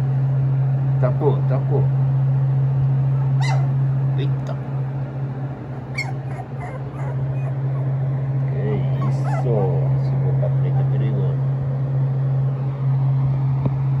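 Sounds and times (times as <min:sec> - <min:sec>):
steady low hum: 0:00.0 - 0:14.0
puppies whimpering and yipping: 0:03.2 - 0:03.8, 0:05.9 - 0:08.0, 0:08.9 - 0:09.6.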